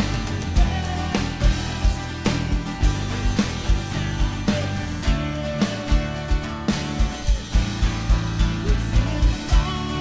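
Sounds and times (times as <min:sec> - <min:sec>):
drum kit beat: 0:00.0 - 0:10.0
electric guitar: 0:00.0 - 0:10.0
strummed acoustic guitar: 0:00.0 - 0:10.0.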